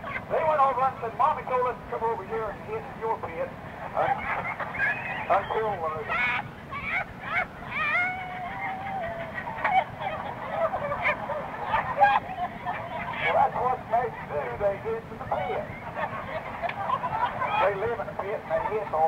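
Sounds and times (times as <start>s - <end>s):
man telling a joke: 5.3s - 6.2s, 13.3s - 15.7s, 17.6s - 19.0s.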